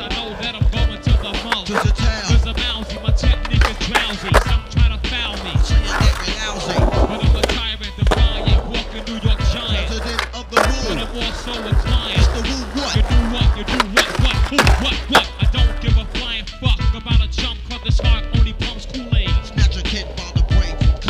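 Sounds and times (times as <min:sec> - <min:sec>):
hip-hop music: 0:00.0 - 0:21.0
skateboard clacking: 0:00.0 - 0:21.0
skateboard wheels rolling on concrete: 0:00.0 - 0:21.0.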